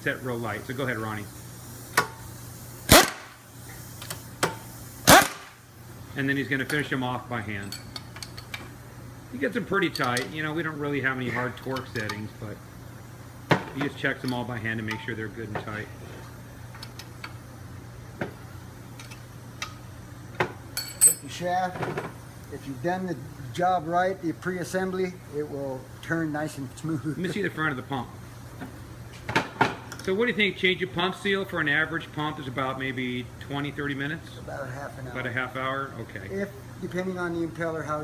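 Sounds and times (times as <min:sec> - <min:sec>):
steady low hum: 0:00.0 - 0:38.0
air impact wrench bursts: 0:00.2 - 0:05.7
wrench metallic clicks: 0:09.9 - 0:10.3.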